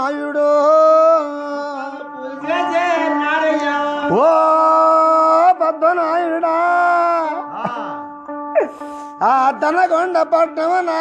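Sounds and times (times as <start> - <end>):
person singing devotional song: 0.0 - 11.0
steady held instrumental tone: 0.0 - 11.0.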